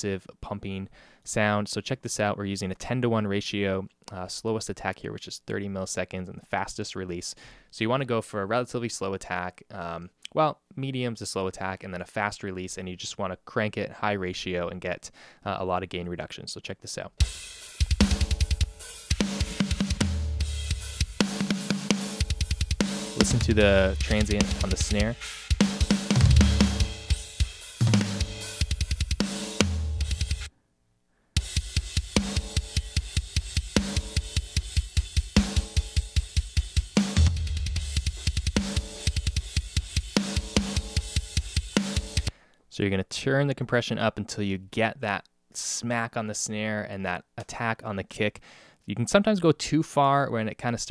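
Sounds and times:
fast kick-drum strokes: 17.2 - 30.5, 31.4 - 42.3
snare and cymbals: 17.2 - 30.5, 31.4 - 42.3
deep low drum hit: 23.2 - 24.8.

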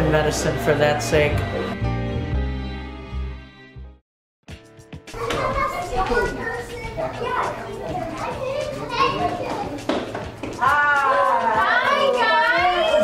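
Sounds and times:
girls chattering and calling out: 5.2 - 13.0.

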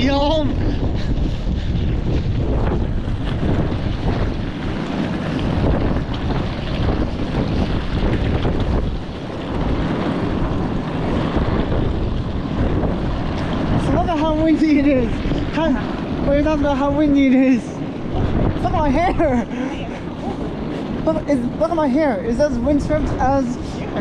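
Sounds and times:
gusty wind buffeting microphone: 0.0 - 24.0.

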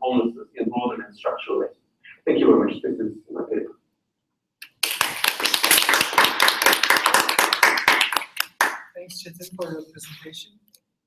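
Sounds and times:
audience applauding: 4.6 - 9.0.

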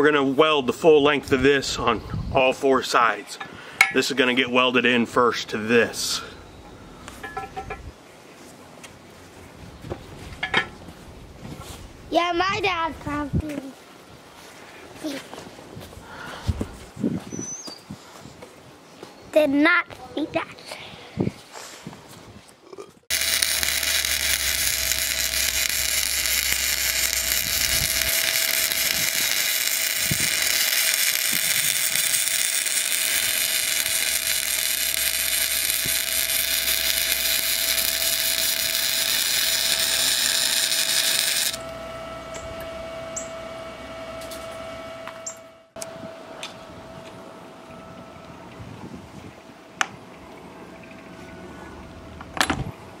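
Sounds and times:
welding arc crackling: 23.1 - 41.8
steady hum: 23.1 - 52.4.

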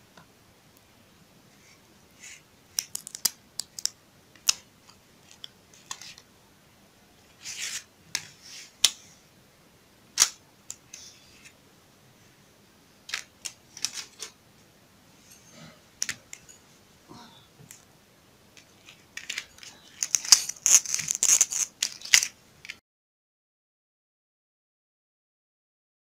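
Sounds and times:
plastic sheet clicking and crackling: 2.7 - 6.2, 10.2 - 11.0, 13.1 - 14.4, 18.6 - 22.8.

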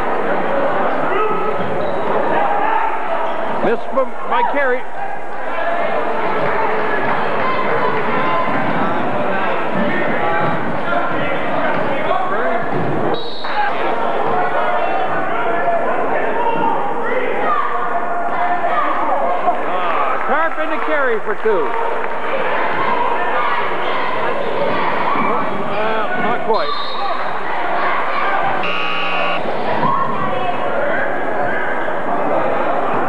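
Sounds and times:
crowd chatter: 0.0 - 33.0
shoe squeaks: 28.6 - 29.4.

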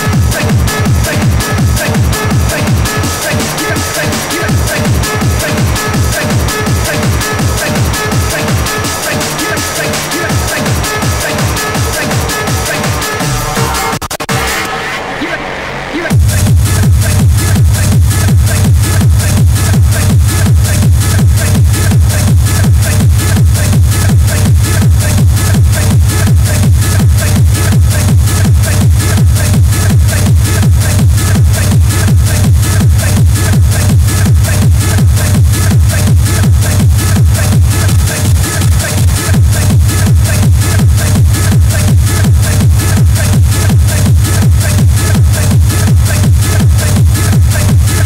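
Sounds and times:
hard techno with kick drum: 0.0 - 48.0.

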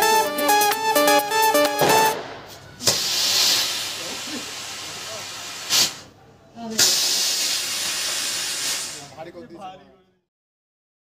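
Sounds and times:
sharp firework pop: 1.8 - 3.6
firework rocket hissing: 2.2 - 9.2.

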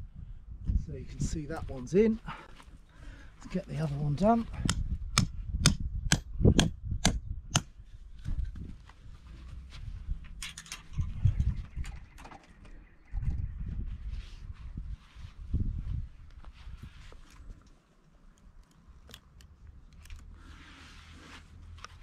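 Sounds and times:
wind rumbling on microphone: 0.0 - 2.2, 3.6 - 17.7
strap clicks and rustle: 17.1 - 20.4.

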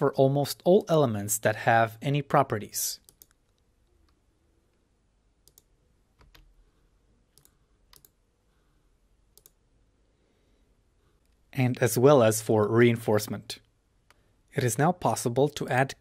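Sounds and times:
computer mouse clicks: 3.0 - 4.2, 5.4 - 6.5, 7.3 - 8.2, 9.3 - 9.6.

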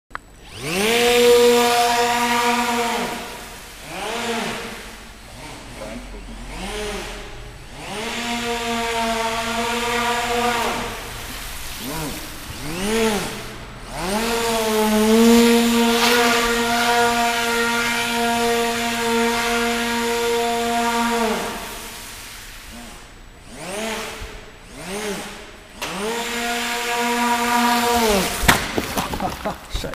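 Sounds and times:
electric motor whining: 0.4 - 28.5.

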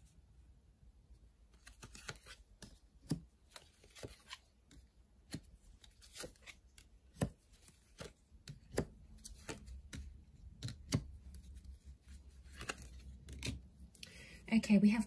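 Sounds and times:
cards tapping and sliding on table: 1.7 - 11.1.

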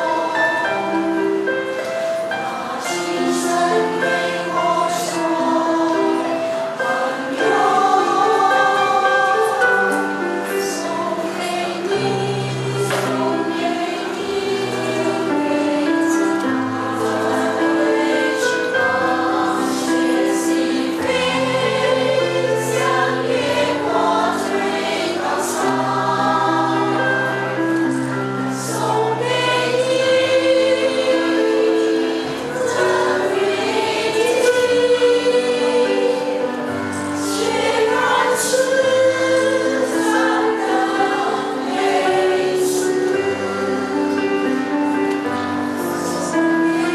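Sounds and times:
women's choir singing: 0.0 - 46.9.

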